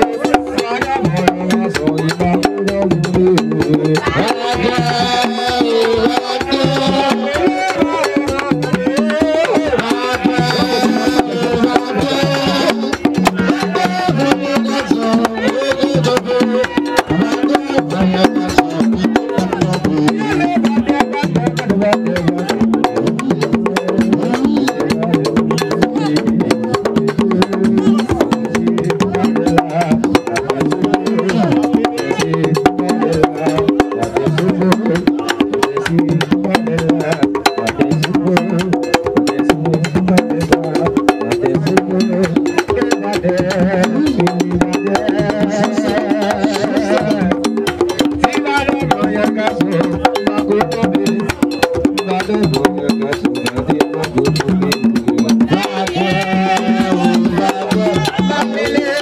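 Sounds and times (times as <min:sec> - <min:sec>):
drums: 0:00.0 - 0:59.0
fast sharp clicking beat: 0:00.0 - 0:59.0
group singing: 0:00.0 - 0:59.0.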